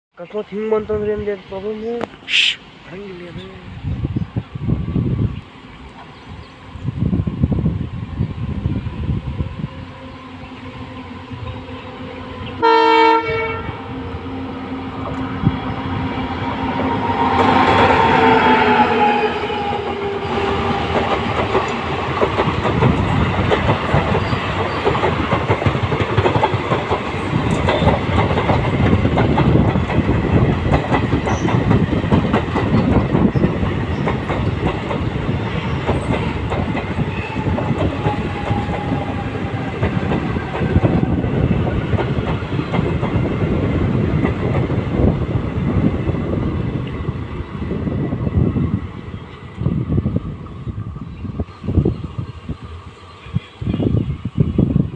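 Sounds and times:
train horn: 12.4 - 14.0, 16.9 - 20.6
train wheels clacking over rail joints: 20.4 - 43.5.

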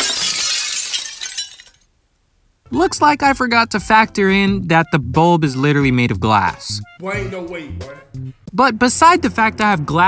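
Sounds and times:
glass shattering: 0.0 - 1.9.

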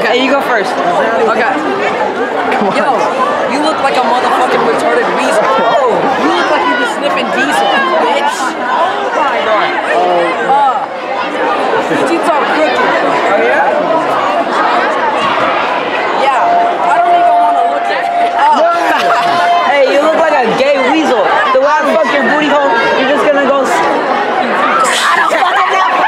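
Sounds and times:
crowd of teenagers talking: 0.0 - 26.0.

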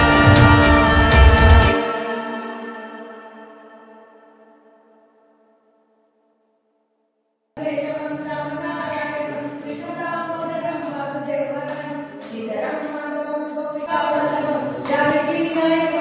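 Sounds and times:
voices singing devotional song: 0.0 - 4.6, 13.8 - 16.0
steady pitched drone: 0.0 - 5.1.

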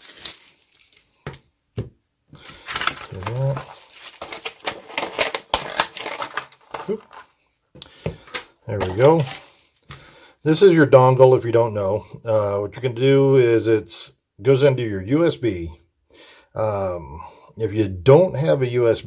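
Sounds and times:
plastic bag crinkling: 0.0 - 1.5, 2.4 - 7.4, 8.2 - 10.0
man making wordless sounds: 3.0 - 3.8, 8.7 - 9.4, 10.4 - 15.8, 16.6 - 19.0.

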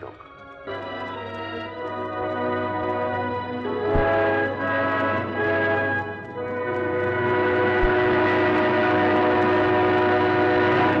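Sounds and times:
orchestral chord with brass: 6.8 - 11.0.

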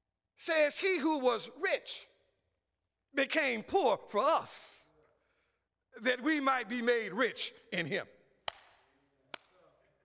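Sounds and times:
man speaking in reverberant room: 0.0 - 10.0.

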